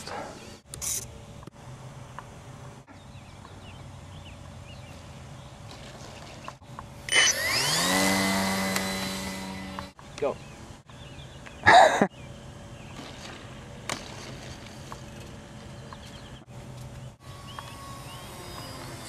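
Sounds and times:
electric motor and propeller whine: 0.0s - 11.5s, 12.2s - 19.0s.

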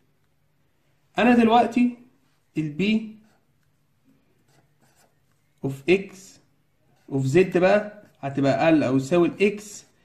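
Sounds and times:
person speaking: 1.1s - 10.0s
marker strokes on paper: 2.4s - 8.4s.

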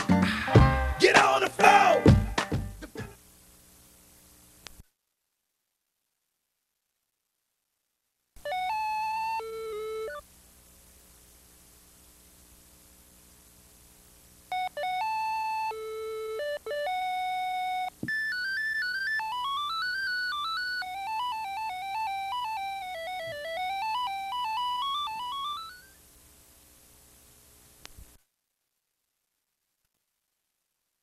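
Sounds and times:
faint steady hum: 0.0s - 31.0s
electronic beeping melody: 14.6s - 25.9s.

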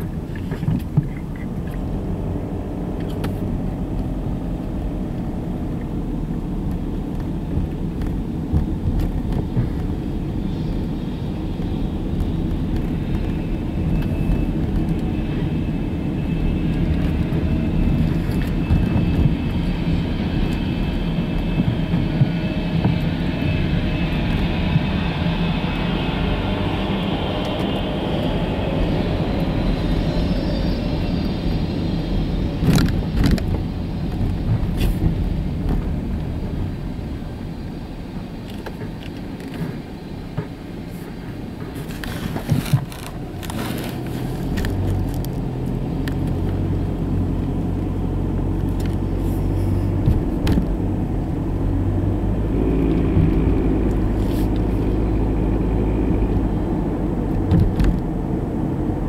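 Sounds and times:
car road and engine rumble: 0.0s - 59.0s.

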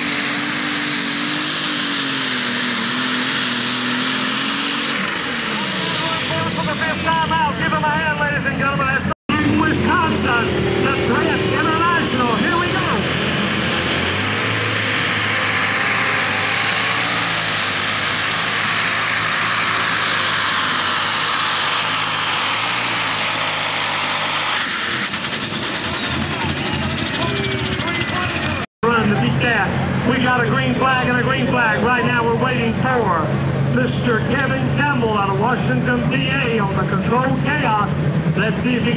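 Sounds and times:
high turbo whine: 0.0s - 38.9s
tractor diesel engine at full power: 0.0s - 38.9s.

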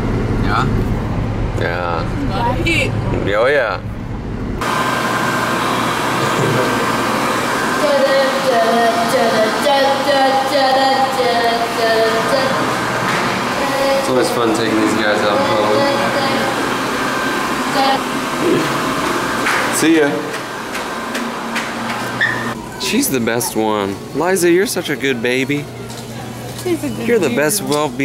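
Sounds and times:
hand dryer blowing: 4.6s - 24.7s
children's voices: 7.8s - 12.8s, 13.5s - 16.6s, 17.7s - 18.1s.

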